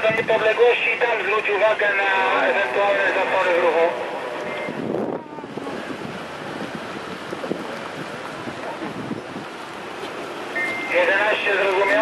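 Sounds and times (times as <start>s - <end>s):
wind on microphone: 0.0s - 0.6s, 4.0s - 10.9s
cars driving slowly past: 0.3s - 12.0s.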